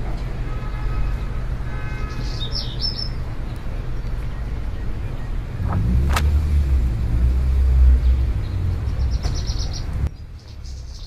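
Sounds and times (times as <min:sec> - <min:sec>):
bird chirping: 0:02.0 - 0:06.1, 0:08.0 - 0:11.0.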